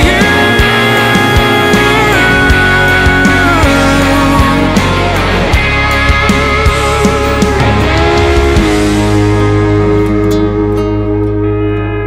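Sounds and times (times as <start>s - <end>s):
country band sustained chord: 0.0s - 12.0s
guitars ringing: 0.0s - 12.0s.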